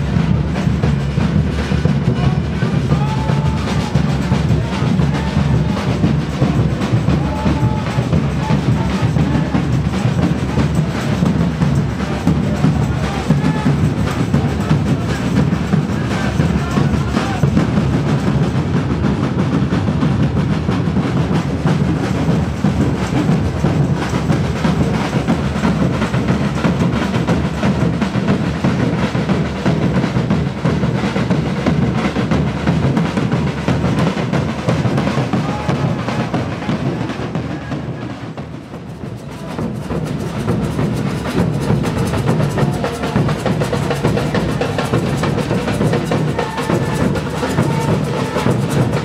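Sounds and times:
drum band playing: 0:00.0 - 0:49.0.

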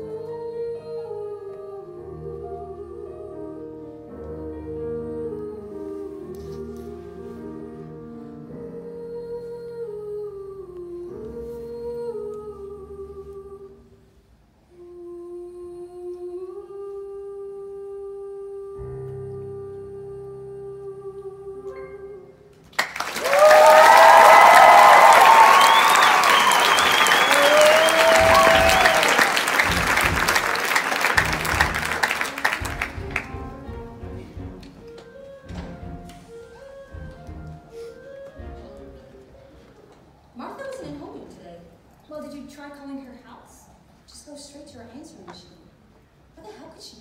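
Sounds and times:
woman singing: 0:00.0 - 0:07.9, 0:08.6 - 0:14.0, 0:14.7 - 0:22.5
audience applauding and cheering: 0:22.8 - 0:33.6
soft accompaniment: 0:27.9 - 0:41.4.

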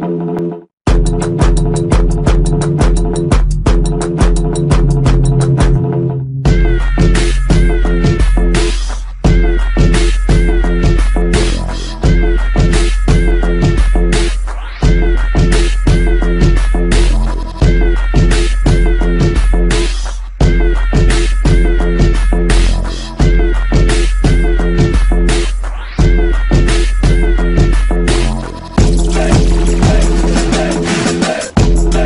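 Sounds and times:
background music with sliding notes: 0:00.3 - 0:14.4.

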